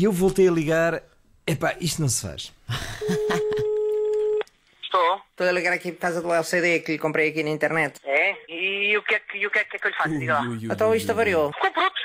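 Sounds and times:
telephone ringing tone beep: 3.0 - 4.4.

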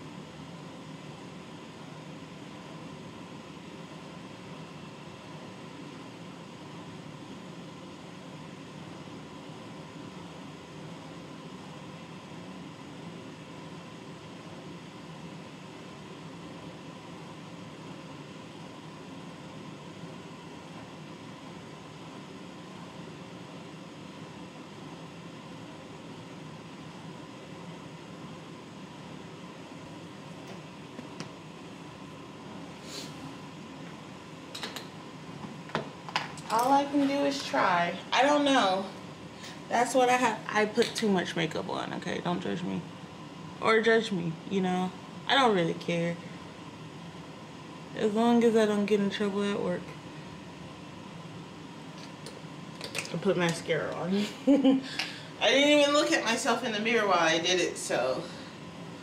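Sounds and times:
faint hum: 0.0 - 59.0.

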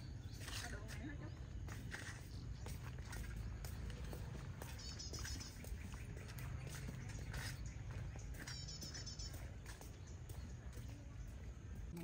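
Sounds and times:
high chirping: 1.3 - 11.4.

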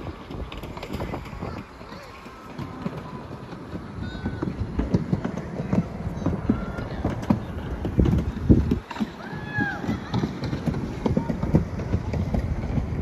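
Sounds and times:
chairlift rumbling and knocking: 0.0 - 13.0
wind on microphone: 0.0 - 13.0.

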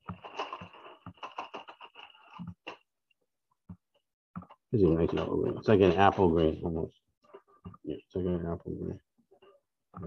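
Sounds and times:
colored pencils clicking and rustling: 0.0 - 2.8.

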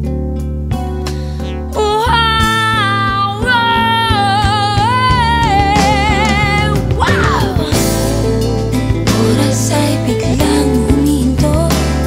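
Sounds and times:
backing band with guitar and bass: 0.0 - 12.0.

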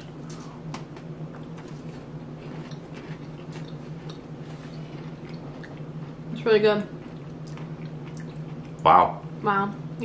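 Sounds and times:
steady low hum: 0.0 - 10.0
chewing crunchy biscuits: 0.2 - 9.3.

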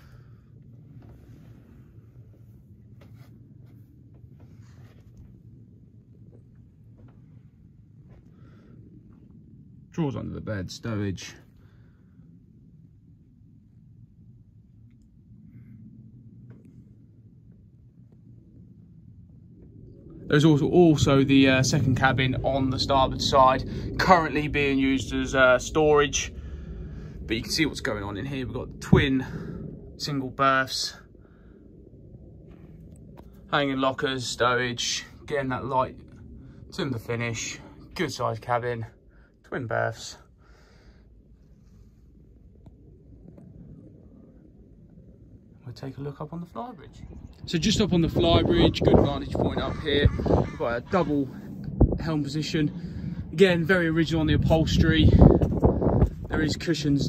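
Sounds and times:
low rumble of room tone: 0.0 - 57.0.

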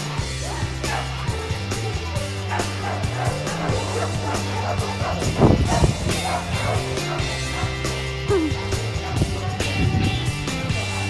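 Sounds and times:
background music with bass line: 0.0 - 11.0
dog barking and yipping: 0.2 - 11.0.

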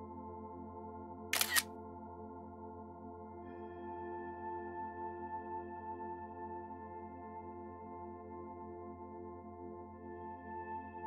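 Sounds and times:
ambient background music: 0.0 - 11.0
camera shutter double click: 1.4 - 1.6.

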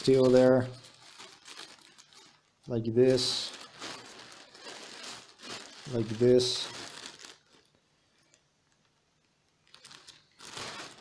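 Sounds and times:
plastic mailer bag crinkling: 0.0 - 7.8, 9.6 - 11.0.

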